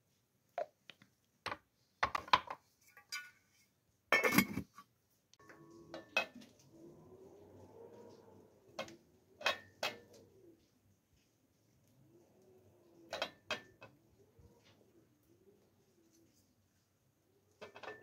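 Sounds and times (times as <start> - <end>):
metal lid clattering onto pot: 4.2 - 4.7.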